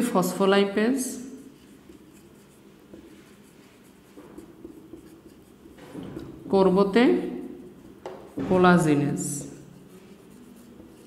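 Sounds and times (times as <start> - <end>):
marker pen writing on whiteboard: 1.1 - 11.0.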